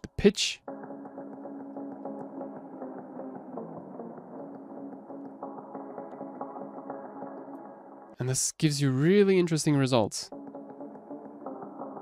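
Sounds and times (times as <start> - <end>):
filtered synth melody with echo: 0.7 - 8.2, 10.3 - 12.0.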